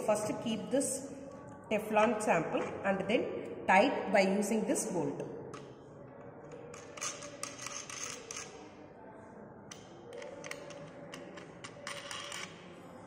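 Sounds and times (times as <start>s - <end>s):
bolt tightening clicks and scraping: 6.7s - 8.6s, 9.7s - 12.6s.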